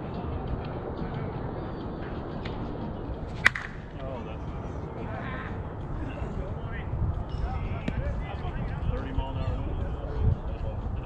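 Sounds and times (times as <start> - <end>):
faint voices chatting: 0.0 - 11.0
sharp knock: 3.4 - 4.0.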